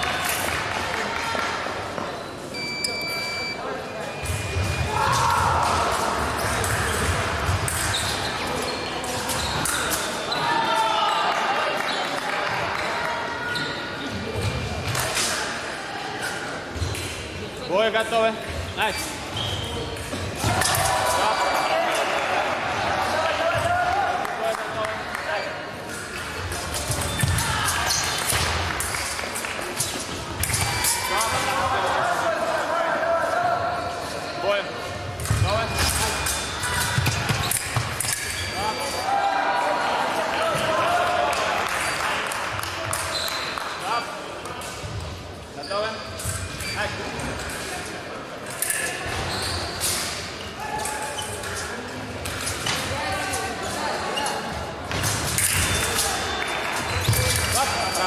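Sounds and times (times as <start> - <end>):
voices echoing in a hall: 0.0 - 58.0.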